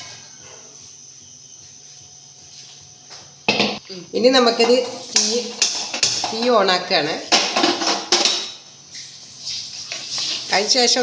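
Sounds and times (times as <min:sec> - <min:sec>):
utensil clinking on cooking pot: 0:04.6 - 0:06.6.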